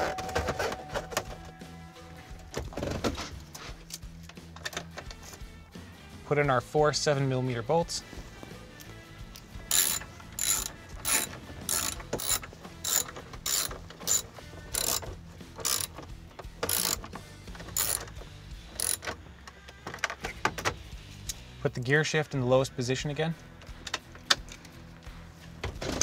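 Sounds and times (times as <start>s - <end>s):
socket ratchet clicking: 9.7s - 19.2s.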